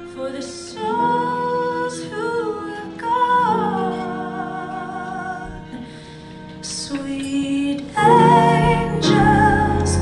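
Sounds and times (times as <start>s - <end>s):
woman singing slow song: 0.0s - 5.9s, 6.6s - 10.0s.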